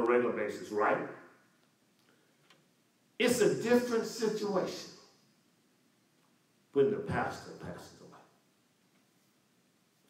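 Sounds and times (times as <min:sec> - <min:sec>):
man's voice: 0:03.2 - 0:05.0, 0:06.8 - 0:08.2.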